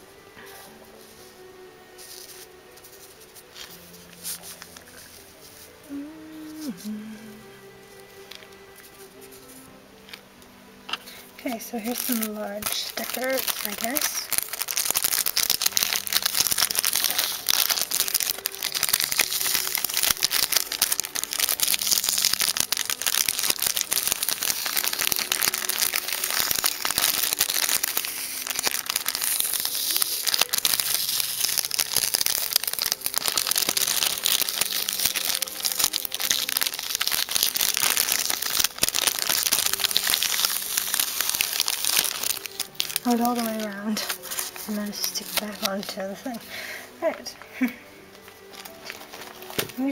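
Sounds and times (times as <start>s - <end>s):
sticker paper crinkling: 2.0s - 5.7s, 10.9s - 47.3s, 48.2s - 49.9s.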